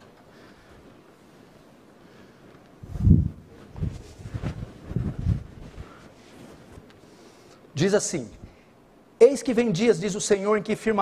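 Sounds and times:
rustling on microphone: 0.0 - 7.4.

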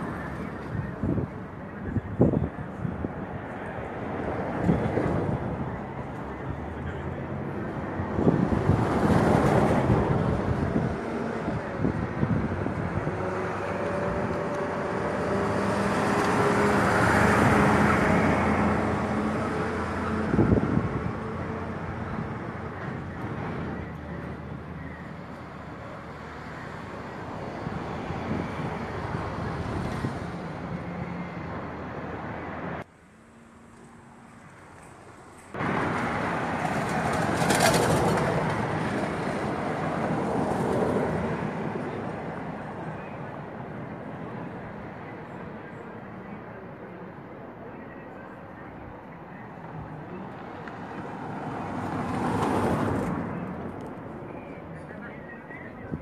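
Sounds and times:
street traffic: 0.0 - 56.0.

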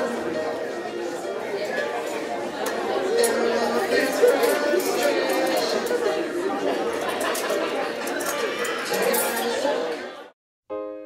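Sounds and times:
overlapping chatter in a hall: 0.0 - 10.4.

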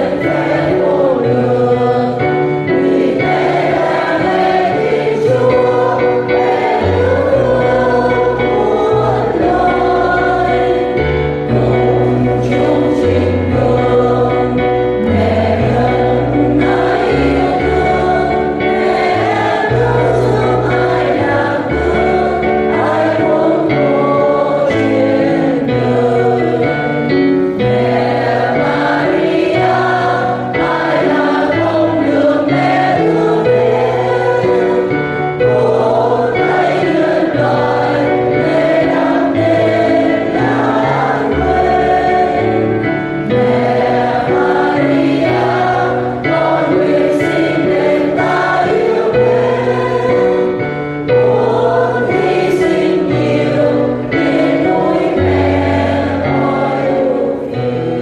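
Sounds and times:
choir singing a hymn: 0.0 - 58.0.

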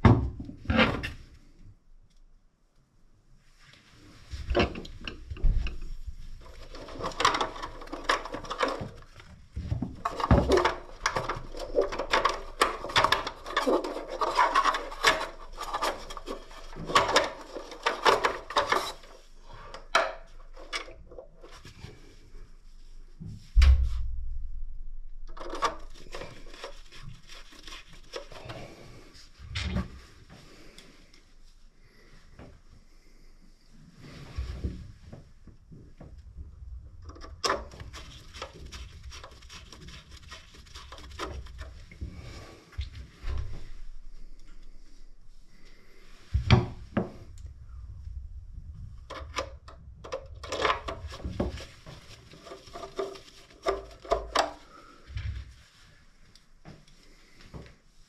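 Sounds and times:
clicks and rubbing of plastic and wire: 4.4 - 22.0, 25.2 - 31.2, 37.0 - 42.2, 48.7 - 55.4
heavy thump: 23.6 - 24.6.

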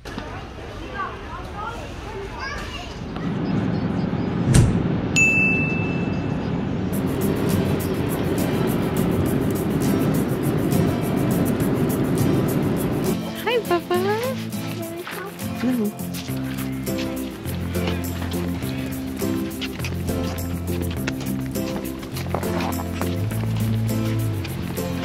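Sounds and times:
voices: 0.0 - 4.5, 6.0 - 25.0
short chime: 5.2 - 6.4.

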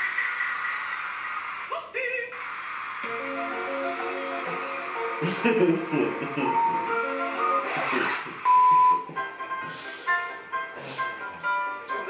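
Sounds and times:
music from video: 2.3 - 12.0
high test-tone beep: 8.4 - 9.1.

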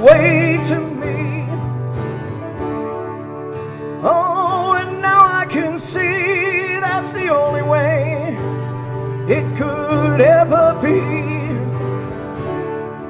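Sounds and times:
man singing with vibrato: 0.0 - 2.2, 4.0 - 13.0
acoustic band playing slow song: 0.0 - 13.0.

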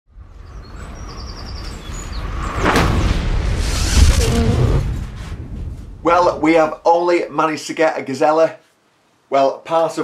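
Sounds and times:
low rumble: 0.1 - 7.1
birds chirping: 0.4 - 4.4
whoosh: 0.7 - 6.8.

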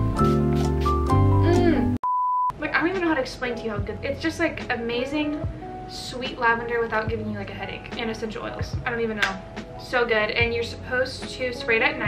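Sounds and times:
background music with chords: 0.0 - 2.0, 3.5 - 12.0
censor bleep: 2.0 - 2.6.

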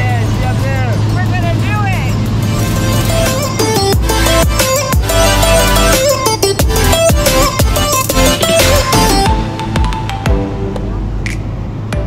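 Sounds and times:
propeller plane engine drone: 0.0 - 12.0.

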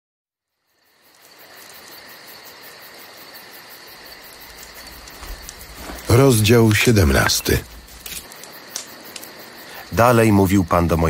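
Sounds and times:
insects chirring: 0.4 - 11.0.

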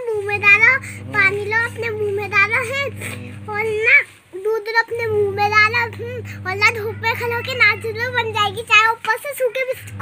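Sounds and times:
girl talking: 0.0 - 10.0
steady low hum: 0.0 - 10.0.

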